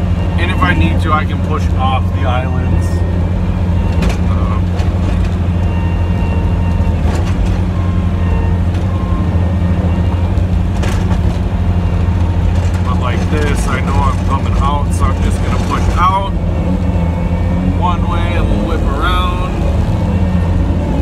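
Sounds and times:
truck engine running under load: 0:00.0 - 0:21.0.

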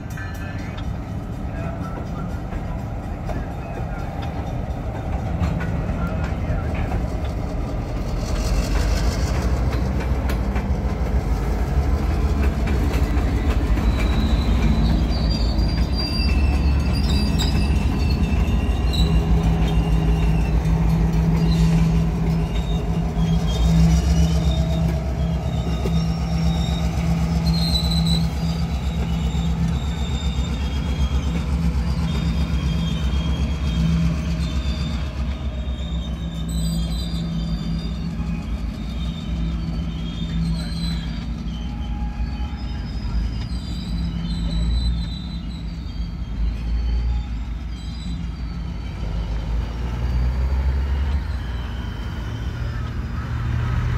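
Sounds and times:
diesel locomotive droning: 0:00.0 - 0:53.9
wheels squealing on rails: 0:00.0 - 0:53.9.

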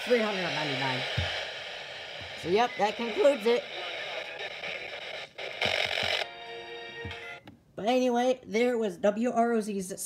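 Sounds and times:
radio static hissing: 0:00.0 - 0:07.4.

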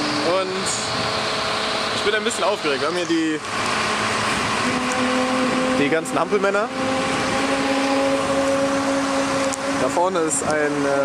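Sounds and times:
motor humming with whine: 0:00.0 - 0:11.0.

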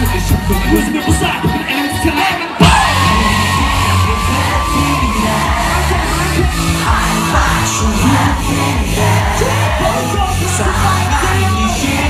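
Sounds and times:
loud live pop music: 0:00.0 - 0:12.0
crowd cheering: 0:02.1 - 0:12.0.

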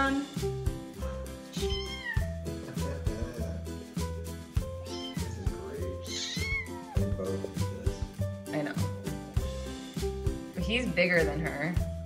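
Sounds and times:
background music with beat: 0:00.0 - 0:12.0
kittens mewing: 0:01.5 - 0:02.4, 0:04.6 - 0:07.1.

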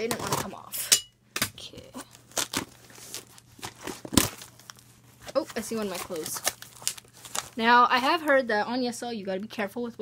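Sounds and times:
cardboard box ripped open: 0:02.3 - 0:04.6.

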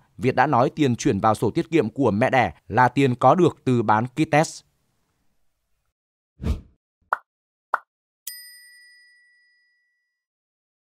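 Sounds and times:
bright bell-like ding: 0:08.3 - 0:10.2.

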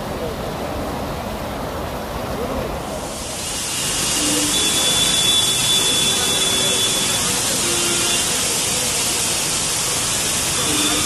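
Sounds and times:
heavy rain pouring: 0:00.0 - 0:11.0
faint high whistle-like tone: 0:04.1 - 0:07.2.

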